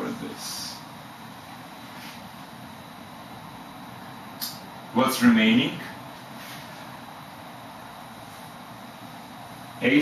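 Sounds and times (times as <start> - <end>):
man speaking: 0.0 - 0.8, 4.9 - 6.0, 9.8 - 10.0
low room hiss: 0.0 - 10.0.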